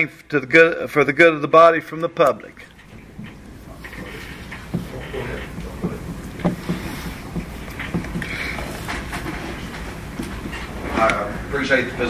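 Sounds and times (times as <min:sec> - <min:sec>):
low room rumble: 0:02.5 - 0:12.0
footsteps on hall floor: 0:02.7 - 0:11.5.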